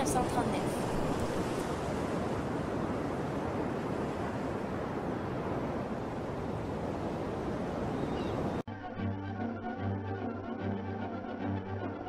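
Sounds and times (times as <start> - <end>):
waves breaking: 0.0 - 8.6.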